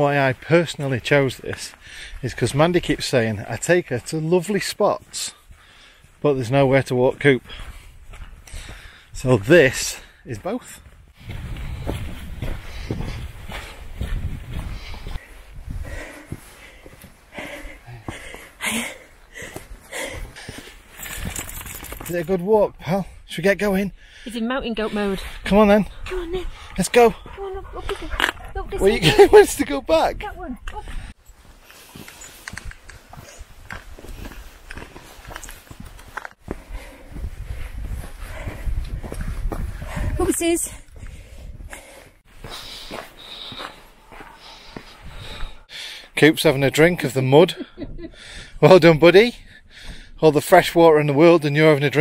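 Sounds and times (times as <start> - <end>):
footsteps on stony dirt trail: 0.4 - 22.3, 30.1 - 45.9
wind rumble on microphone: 11.0 - 16.1, 36.5 - 41.8.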